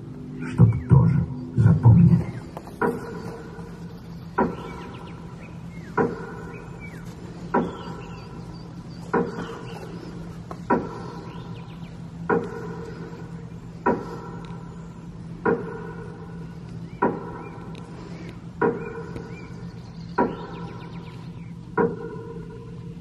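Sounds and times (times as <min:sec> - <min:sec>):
low steady hum: 0:00.0 - 0:23.0.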